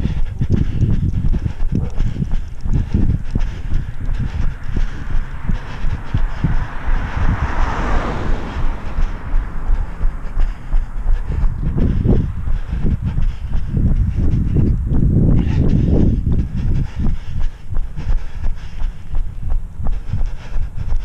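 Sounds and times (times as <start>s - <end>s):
passing car: 0.0s - 21.0s
wind rumbling on microphone: 0.0s - 21.0s.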